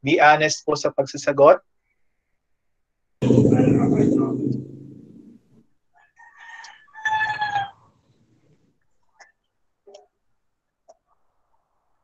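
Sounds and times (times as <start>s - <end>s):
loud low-pitched sound: 3.2s - 5.5s
rooster crowing: 6.0s - 8.0s.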